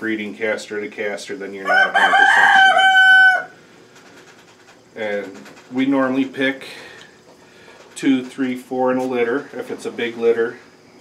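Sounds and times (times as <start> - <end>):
quiet barn background: 0.0 - 11.0
rooster crowing: 1.6 - 3.7.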